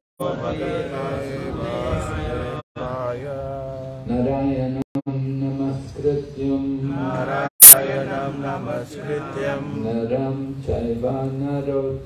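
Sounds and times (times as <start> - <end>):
man chanting prayers: 0.3 - 12.0.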